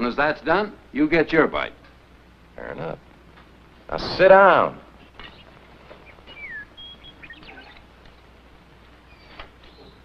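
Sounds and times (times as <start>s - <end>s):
film soundtrack hum and hiss: 0.0s - 10.0s
bird chirps: 5.1s - 7.9s, 9.0s - 10.0s.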